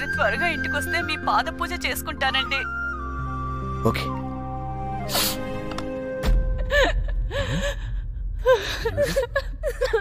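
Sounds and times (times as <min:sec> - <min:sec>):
woman sobbing: 0:06.5 - 0:10.0.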